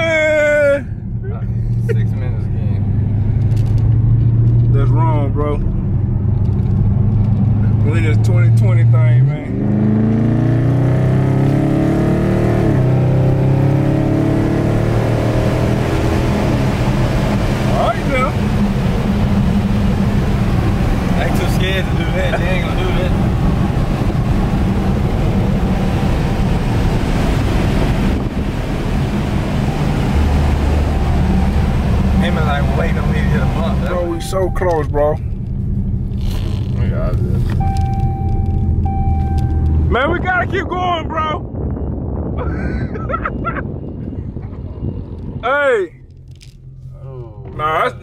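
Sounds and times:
car engine accelerating: 0:00.0 - 0:42.3
road noise inside car: 0:00.0 - 0:48.0.

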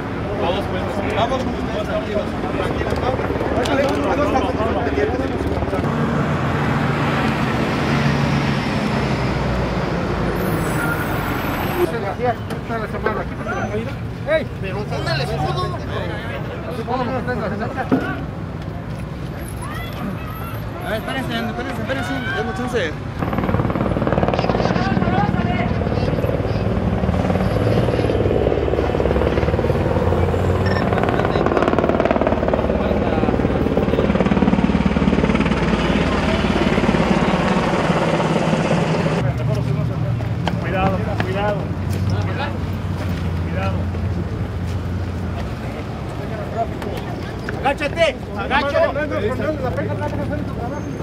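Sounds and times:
helicopter rotor beating: 0:00.4 - 0:11.9, 0:23.1 - 0:39.2.

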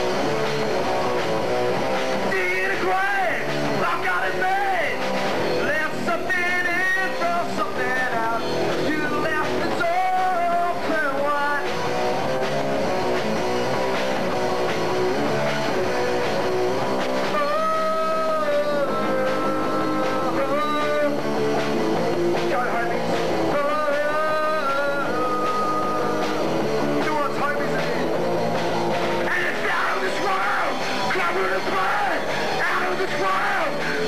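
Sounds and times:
live rock band playing: 0:00.0 - 0:34.0
lead vocal singing: 0:02.2 - 0:05.0, 0:05.6 - 0:11.8, 0:17.3 - 0:21.2, 0:22.4 - 0:28.1, 0:29.1 - 0:34.0.

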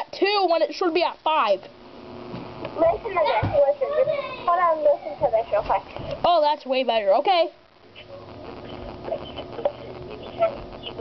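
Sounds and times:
faint sounds over phone line: 0:02.8 - 0:11.0.

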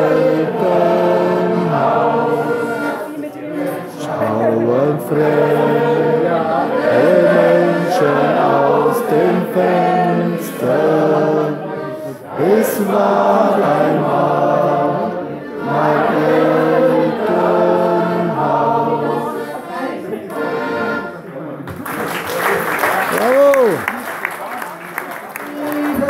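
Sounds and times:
group of voices singing in chorus: 0:00.0 - 0:21.1.

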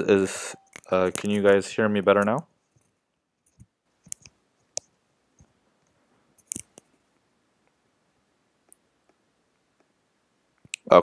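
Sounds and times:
computer mouse clicks: 0:03.4 - 0:06.9.

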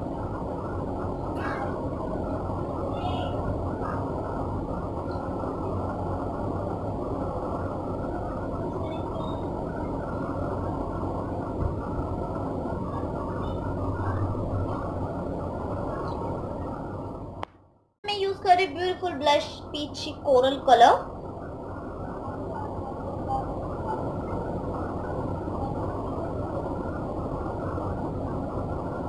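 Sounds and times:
muffled low rumbling: 0:00.0 - 0:29.0.

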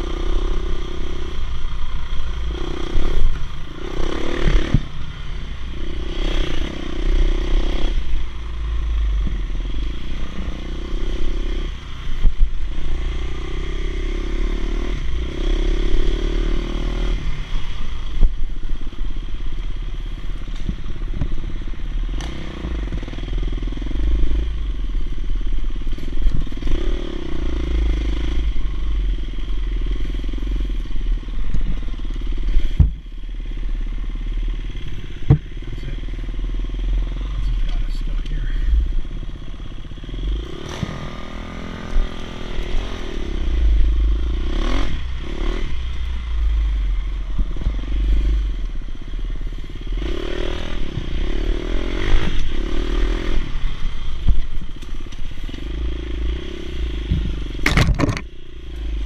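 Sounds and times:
dirt bike engine revving: 0:00.0 - 0:11.8, 0:34.3 - 0:46.8, 0:47.5 - 0:54.2
sharp knocks over bumps: 0:32.6 - 0:33.1, 0:34.8 - 0:35.6, 0:57.0 - 0:58.3.

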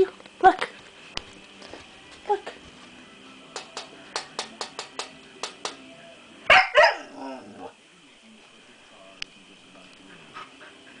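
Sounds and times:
puppy barking: 0:06.5 - 0:07.1.

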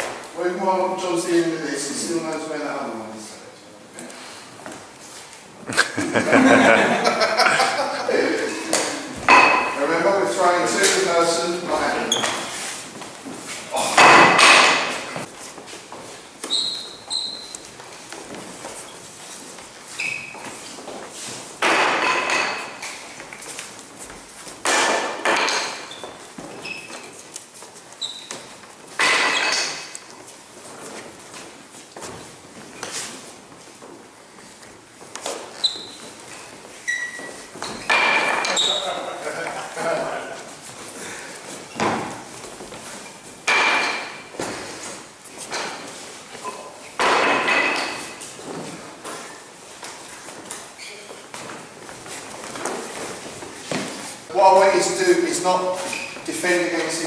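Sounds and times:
man talking: 0:00.4 - 0:04.1, 0:05.7 - 0:09.2, 0:09.8 - 0:12.2, 0:13.7 - 0:14.3, 0:38.5 - 0:40.5, 0:54.3 - 0:57.0
shuffling footsteps on wooden floor: 0:07.4 - 0:14.0, 0:14.8 - 0:21.6, 0:22.6 - 0:24.6, 0:30.0 - 0:38.0, 0:38.6 - 0:43.5, 0:48.0 - 0:57.0.

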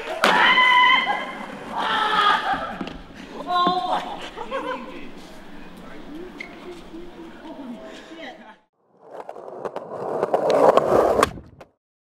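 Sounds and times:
skateboard wheels rolling on pavement: 0:08.9 - 0:11.8.

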